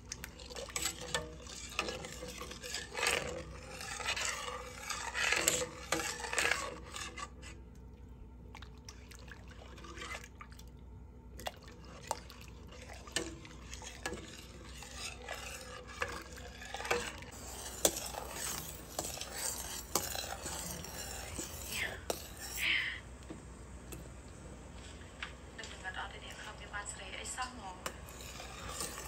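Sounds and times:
spoon scraping metal pot: 0:00.0 - 0:07.6, 0:09.7 - 0:10.3, 0:11.7 - 0:22.8, 0:27.2 - 0:29.0
liquid swishing: 0:00.0 - 0:22.6, 0:27.8 - 0:29.0.

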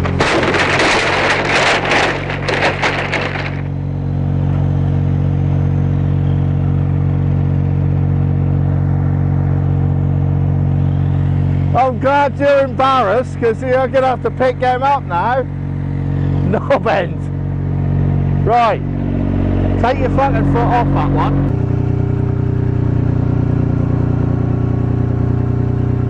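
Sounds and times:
forklift engine running: 0:00.0 - 0:26.0
loud rough noise: 0:00.0 - 0:26.0.

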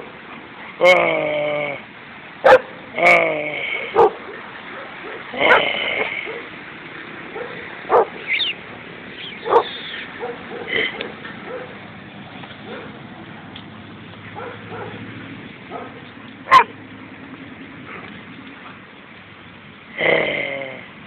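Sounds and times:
dogs barking and yelping: 0:02.4 - 0:02.8, 0:03.8 - 0:06.6, 0:07.3 - 0:11.8, 0:12.6 - 0:13.0, 0:14.3 - 0:15.1, 0:15.7 - 0:16.8
dog whining: 0:16.5 - 0:16.7.

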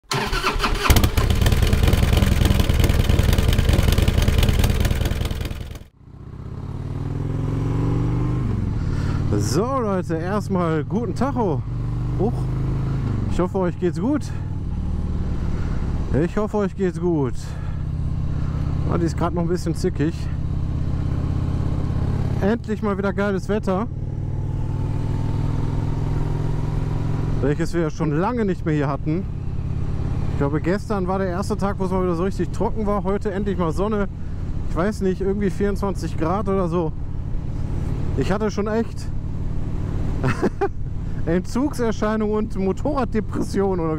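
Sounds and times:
motorcycle engine starting and running: 0:00.0 - 0:43.9
motorcycle engine pulling away: 0:00.1 - 0:09.6, 0:11.6 - 0:13.5, 0:14.3 - 0:16.2, 0:20.3 - 0:22.7, 0:23.6 - 0:27.5.

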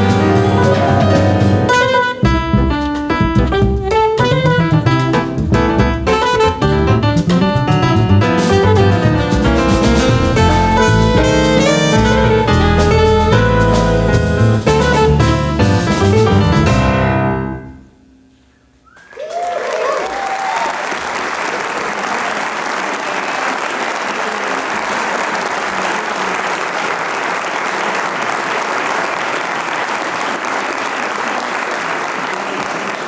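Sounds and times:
jazz quartet playing: 0:00.0 - 0:17.8
audience applauding: 0:18.9 - 0:33.0.

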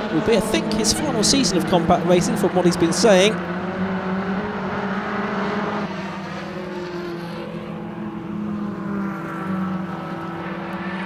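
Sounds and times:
race car engines drone: 0:00.0 - 0:11.0.

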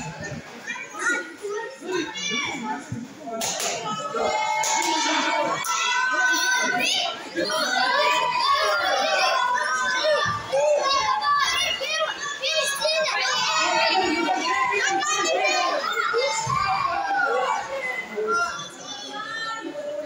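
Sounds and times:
children shouting: 0:03.6 - 0:20.0.

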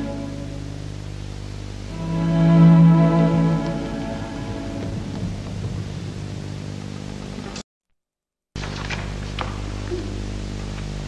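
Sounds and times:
string chord: 0:00.0 - 0:06.8
low steady hum: 0:00.0 - 0:07.6.

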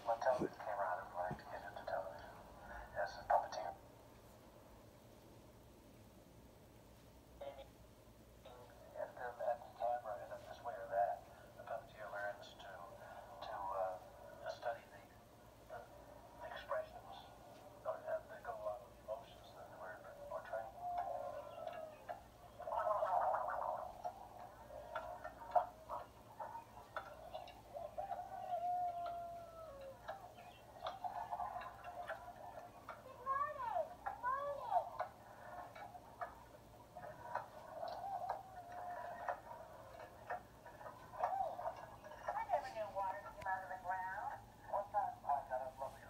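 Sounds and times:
faint voices from small speaker: 0:00.0 - 0:03.8, 0:08.5 - 0:46.0.

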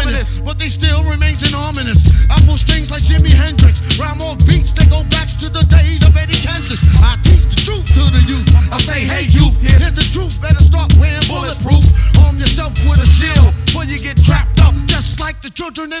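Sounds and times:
rapping over a beat: 0:00.0 - 0:16.0.

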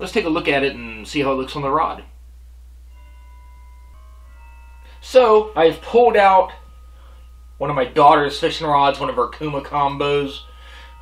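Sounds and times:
faint christmas music: 0:00.0 - 0:11.0.

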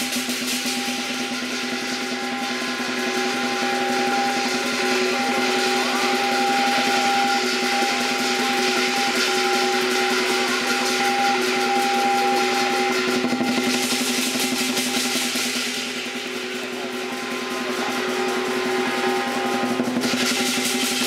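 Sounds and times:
cymbals and gong ringing: 0:00.0 - 0:21.0
fast drum roll: 0:00.0 - 0:21.0.

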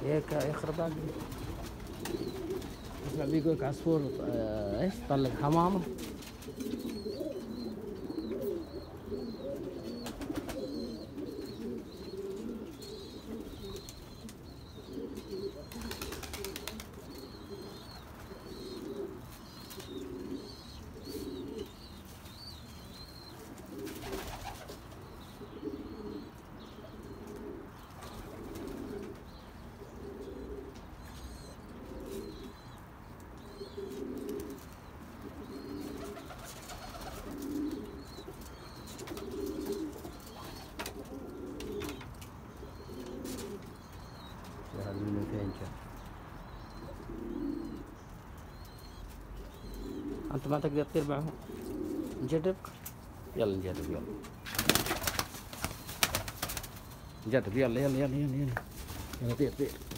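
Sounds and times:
pigeons cooing: 0:00.0 - 0:59.9
small birds chirping: 0:00.0 - 0:59.9.

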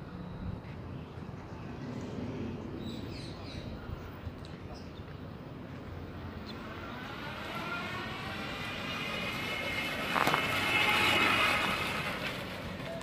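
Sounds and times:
electric motorcycle motor whining: 0:06.1 - 0:12.9.

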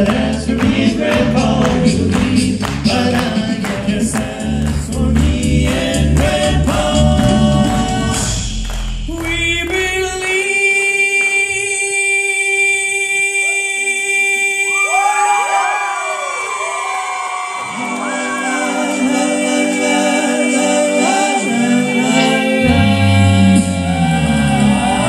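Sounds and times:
a cappella voices low chord: 0:00.0 - 0:14.9, 0:17.7 - 0:25.0
audience cheering: 0:14.8 - 0:19.0, 0:23.8 - 0:25.0.

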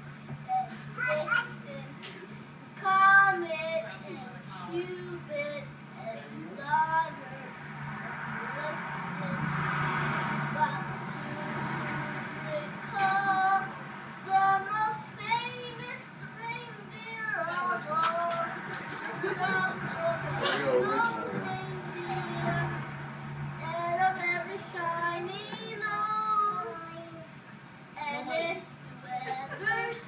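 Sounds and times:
young child singing: 0:00.4 - 0:02.2, 0:02.8 - 0:07.5, 0:08.4 - 0:09.6, 0:10.4 - 0:22.9, 0:23.6 - 0:27.4, 0:28.0 - 0:30.0.

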